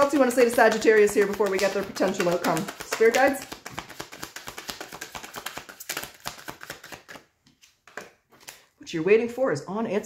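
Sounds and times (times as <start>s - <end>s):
cards being shuffled: 0.0s - 8.7s.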